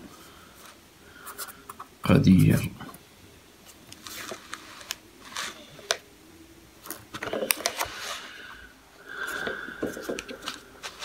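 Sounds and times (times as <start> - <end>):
paper rustling: 3.6 - 6.0, 9.3 - 11.0.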